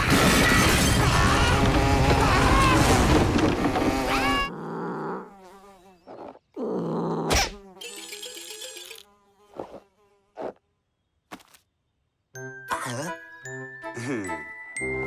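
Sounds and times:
cartoon fly buzzing: 3.6s - 10.7s.

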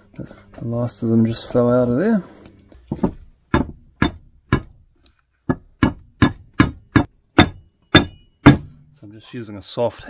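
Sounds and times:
mallet knocking on metal shaft: 2.9s - 4.8s, 5.5s - 8.9s.

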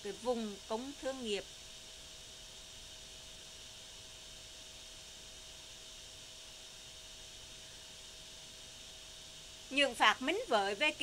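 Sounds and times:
steady low hiss: 0.0s - 11.0s
thin steady whine: 0.0s - 11.0s.

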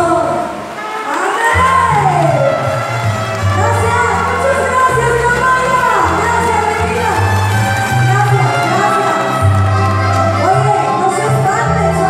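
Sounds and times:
backing music with bass line: 1.6s - 12.0s
woman singing: 10.4s - 12.0s.

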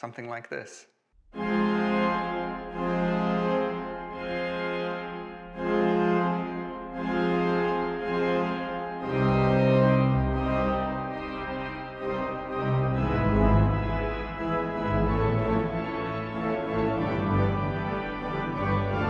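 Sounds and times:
deep organ bass notes: 1.4s - 19.0s
pipe organ sustained chords: 1.4s - 19.0s.

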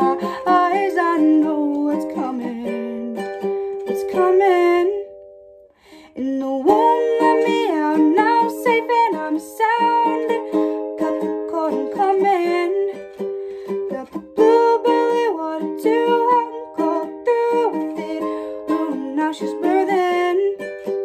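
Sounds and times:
young woman singing: 0.0s - 5.3s, 5.9s - 21.0s
ukulele strumming: 0.0s - 5.6s, 6.2s - 21.0s.

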